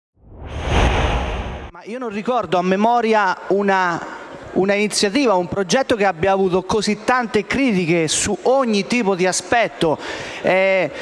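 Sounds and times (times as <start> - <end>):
whoosh sound effect: 0.2 - 1.7.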